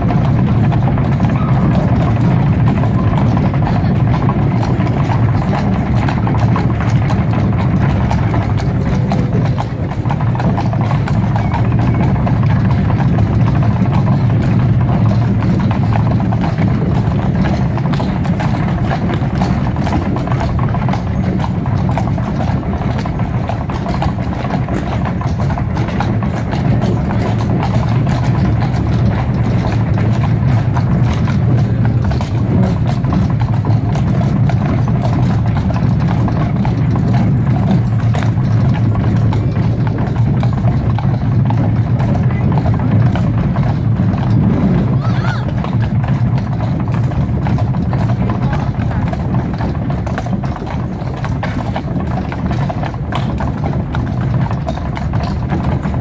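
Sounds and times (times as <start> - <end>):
cart wheels rumbling on cobbles: 0.0 - 56.0
hooves clip-clopping on cobblestones: 0.0 - 56.0.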